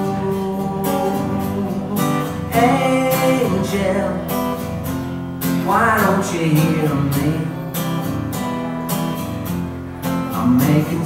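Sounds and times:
person singing: 0.0 - 4.6, 5.6 - 7.9, 10.3 - 11.0
acoustic guitar strumming: 0.0 - 11.0.

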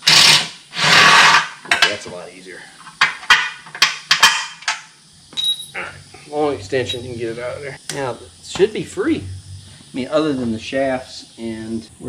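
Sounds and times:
metal tools clanking on metal: 1.6 - 2.2, 2.8 - 5.8
high metallic ring: 5.4 - 5.8, 6.7 - 7.3.

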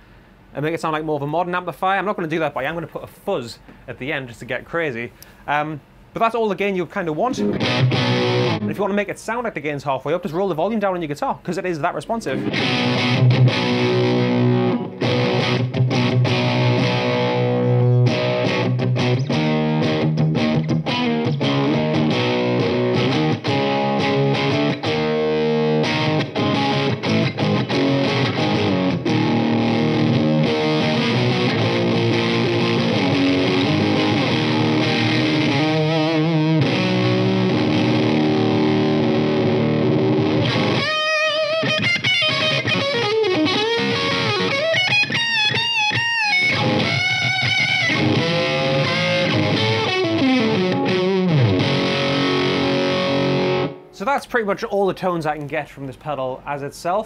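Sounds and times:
overdriven electric guitar riffing: 7.3 - 8.9, 12.3 - 54.0.

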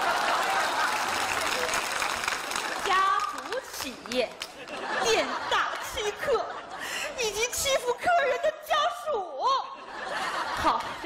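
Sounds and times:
studio audience applauding: 0.0 - 5.4.

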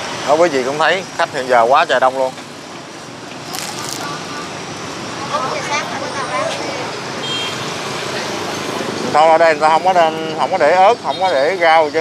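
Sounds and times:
roadside traffic noise: 0.0 - 12.0.

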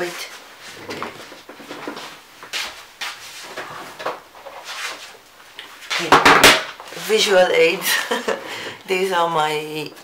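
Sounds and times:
rustling and scraping objects: 0.0 - 7.3.

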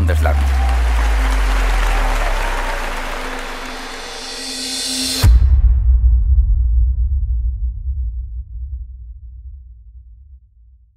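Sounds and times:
audience applauding: 0.0 - 5.2.

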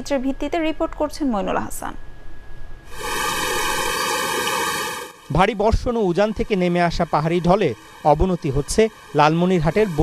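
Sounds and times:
floodwater rushing: 2.9 - 10.0.

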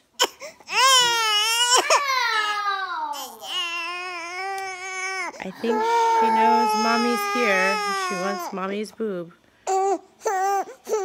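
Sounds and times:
baby crying: 0.2 - 8.7, 9.7 - 11.0.

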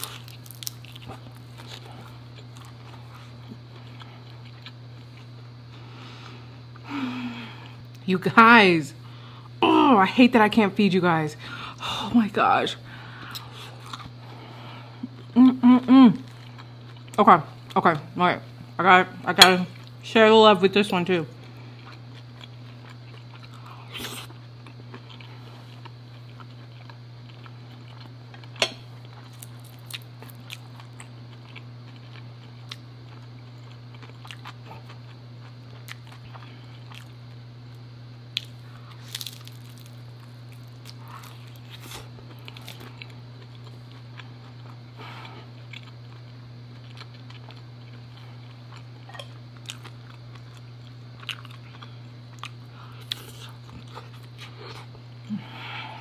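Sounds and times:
crisp crunching bites: 0.0 - 4.8, 29.1 - 37.1, 38.3 - 44.8
steady low hum: 0.0 - 56.0
quiet chewing: 0.1 - 6.8, 13.0 - 15.3, 21.3 - 55.5.

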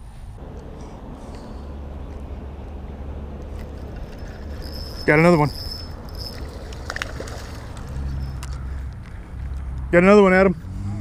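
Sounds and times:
wind rumbling on microphone: 0.0 - 9.9.

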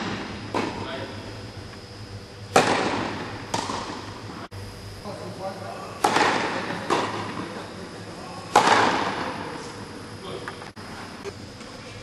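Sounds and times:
racket hitting tennis ball: 0.0 - 0.8, 2.5 - 4.1, 6.0 - 7.5, 8.5 - 9.4.

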